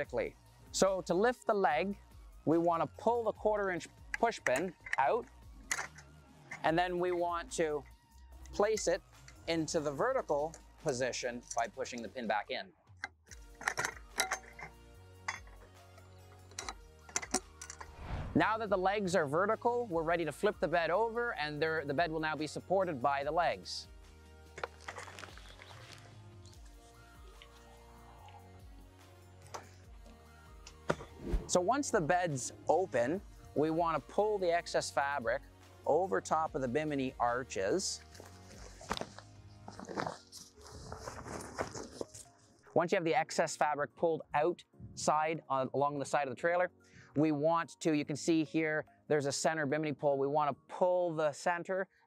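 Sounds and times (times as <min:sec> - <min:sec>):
soft background music: 0:00.0 - 0:52.0
metal clicks and clinks: 0:05.7 - 0:06.7, 0:11.4 - 0:12.1, 0:13.0 - 0:15.7, 0:16.3 - 0:17.9
tent fabric rustling: 0:24.7 - 0:27.8, 0:38.0 - 0:42.8.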